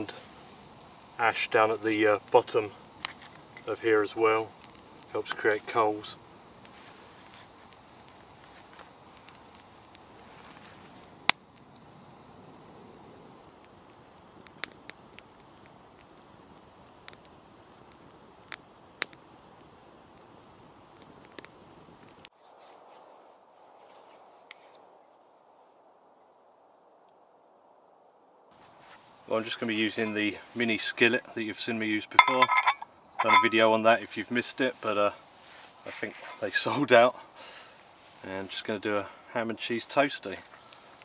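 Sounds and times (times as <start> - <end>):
wood fire crackling and popping: 0.0 - 22.3, 28.5 - 34.5, 35.3 - 41.0.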